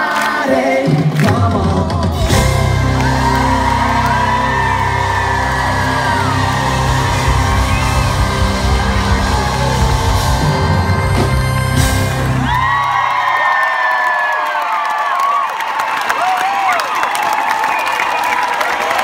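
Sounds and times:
live band with heavy bass: 1.0 - 12.9
crowd cheering and screaming: 2.2 - 19.0.

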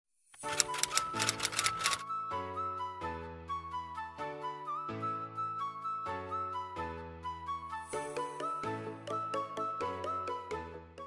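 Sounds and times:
typewriter keystroke clicks: 0.4 - 2.0
background music: 0.4 - 11.0.

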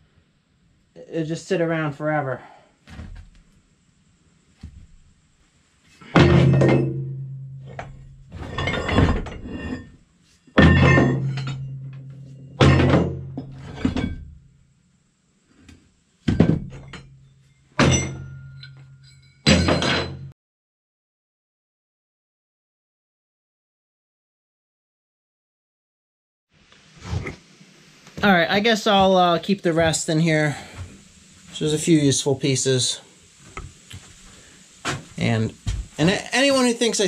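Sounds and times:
steel plates clanging into metal tub: 6.1 - 9.9, 10.6 - 14.3, 17.8 - 20.3.

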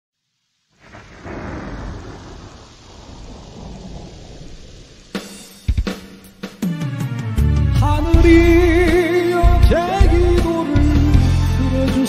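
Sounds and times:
thunder and rain sound effect: 0.8 - 11.4.

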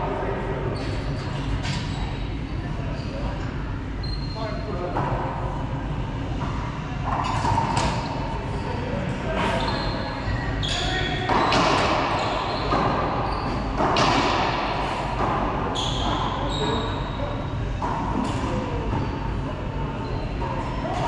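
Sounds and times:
sneakers squeaking on hardwood: 9.4 - 14.5, 15.2 - 17.2, 18.9 - 19.3.

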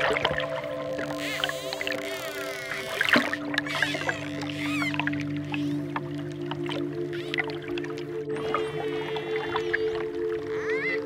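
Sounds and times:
held music chord: 0.0 - 11.0
dolphin whistles and clicks: 1.1 - 5.8.

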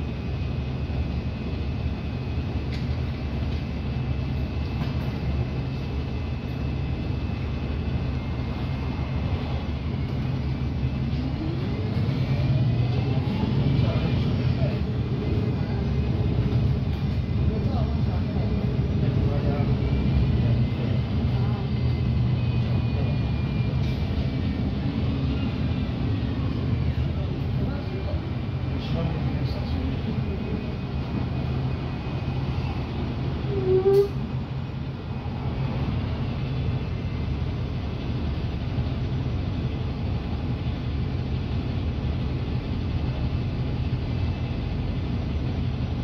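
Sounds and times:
rising acceleration whine: 0.0 - 40.4
bus diesel engine: 0.0 - 46.0.

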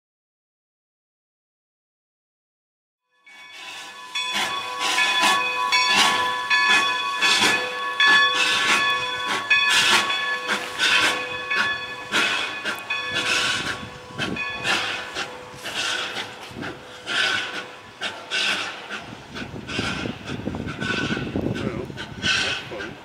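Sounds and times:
steam locomotive chuffing: 3.2 - 23.0.

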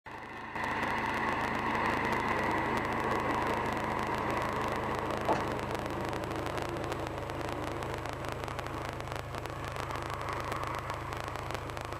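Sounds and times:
car exhaust idling: 0.1 - 11.9.

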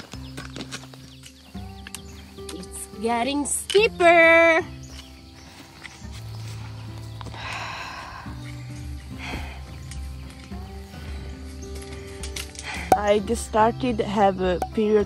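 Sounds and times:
music of held low notes: 0.0 - 15.0.

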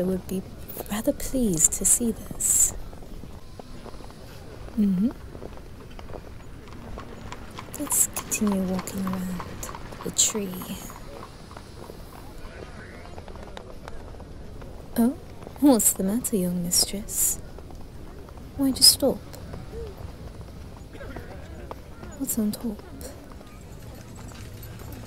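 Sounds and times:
faint crowd chatter: 0.0 - 25.0.

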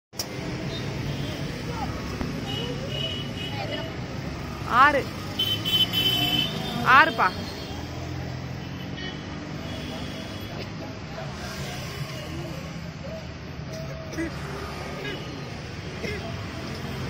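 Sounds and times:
traffic rumble: 0.2 - 17.0.

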